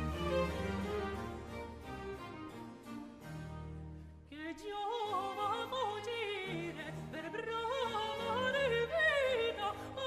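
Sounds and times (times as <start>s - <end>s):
string orchestra: 0.0s - 10.0s.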